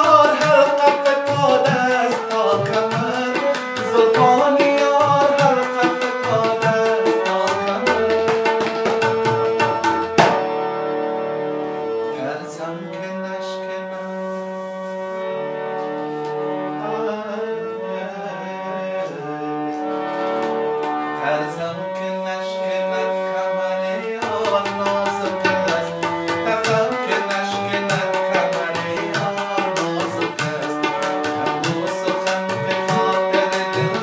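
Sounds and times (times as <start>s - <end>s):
tabla strokes: 0.0s - 10.6s
harmonium melody: 0.0s - 34.0s.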